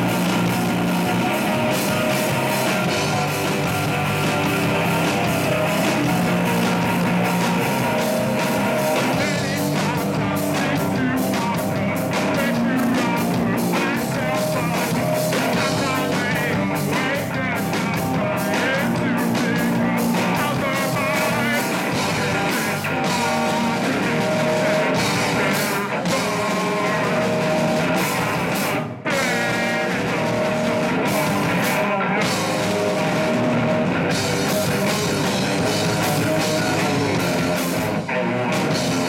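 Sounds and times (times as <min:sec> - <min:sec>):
distorted electric guitar: 0:00.0 - 0:39.0
drum kit: 0:00.0 - 0:39.0
person singing: 0:00.0 - 0:39.0.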